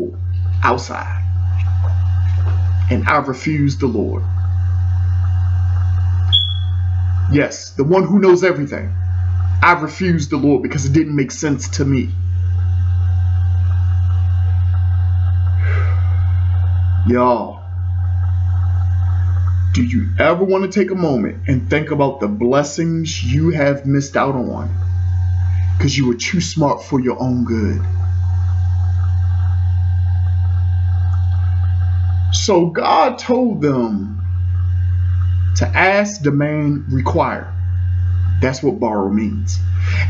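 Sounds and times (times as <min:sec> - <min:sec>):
deep held bass note: 0:00.0 - 0:40.0.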